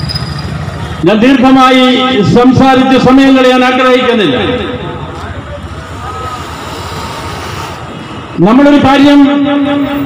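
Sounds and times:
passing vehicle engine: 4.5 - 8.4.

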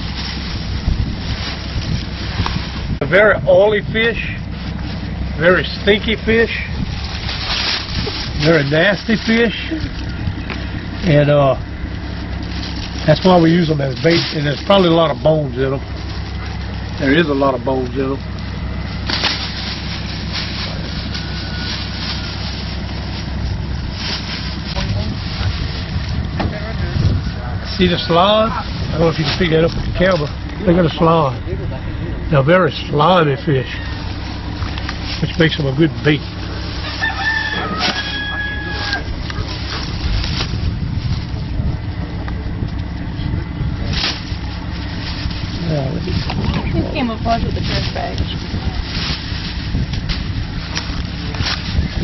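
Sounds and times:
steady low rumble: 0.0 - 52.0
vehicle engine idling: 0.0 - 52.0
wind buffeting microphone: 0.0 - 52.0.

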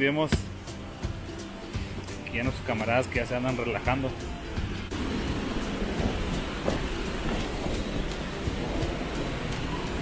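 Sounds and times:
hot spring jet spraying: 0.6 - 10.0
river rapids rushing: 3.5 - 10.0.

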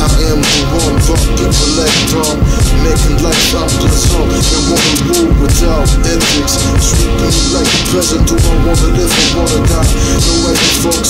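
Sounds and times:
rapping over a drum beat: 0.0 - 11.0.

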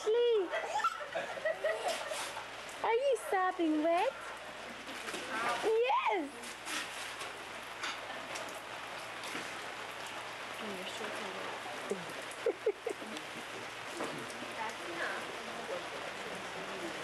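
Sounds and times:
rain splashing on pavement: 0.0 - 17.0.

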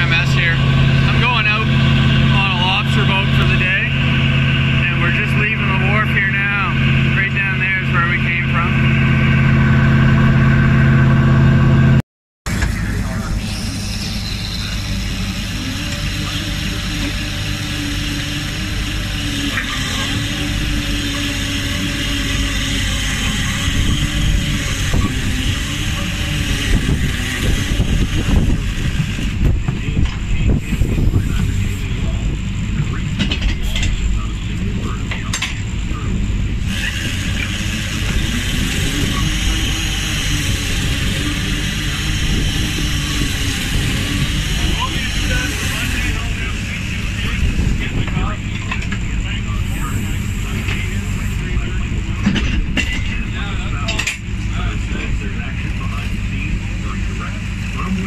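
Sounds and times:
boat engine running: 0.0 - 58.0
knocks and clatter: 32.8 - 34.1, 52.2 - 53.2.

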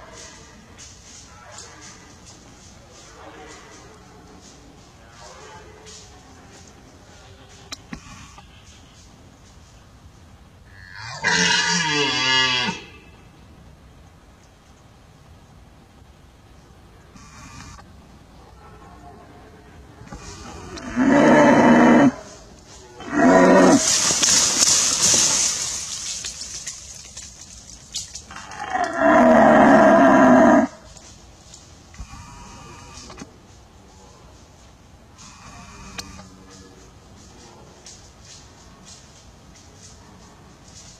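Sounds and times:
deer stag roaring: 10.7 - 13.0, 20.1 - 22.3, 23.0 - 24.6, 28.3 - 30.8
breathy hiss: 17.1 - 17.9, 20.0 - 40.9.

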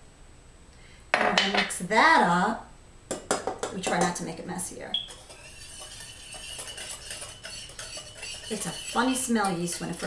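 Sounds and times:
utensil clinking in glass bowl: 5.1 - 10.0.

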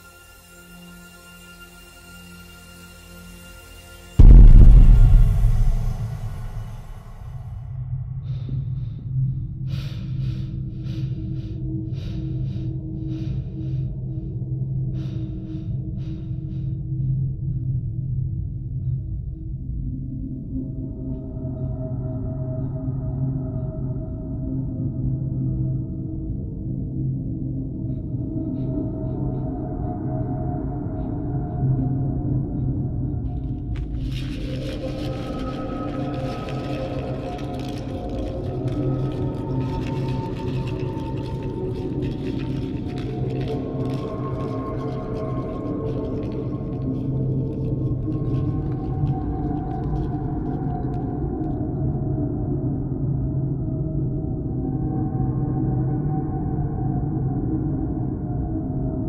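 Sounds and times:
low droning music: 0.0 - 59.0
rumbling hissing sound effect: 4.2 - 7.7, 33.7 - 50.9
man breathing hard: 8.1 - 17.0.

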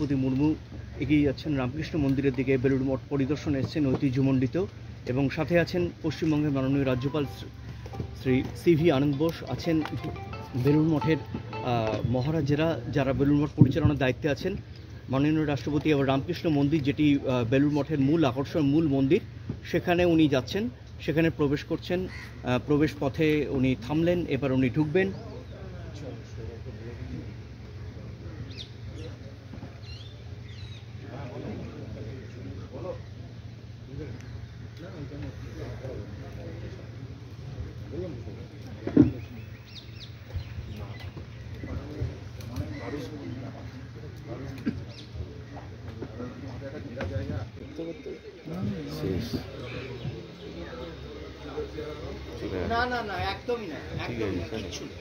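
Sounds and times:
man talking: 0.0 - 25.2, 46.2 - 55.0.

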